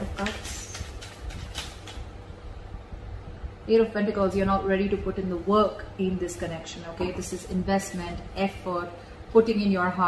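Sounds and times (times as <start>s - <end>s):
cards shuffling: 0.0s - 2.1s.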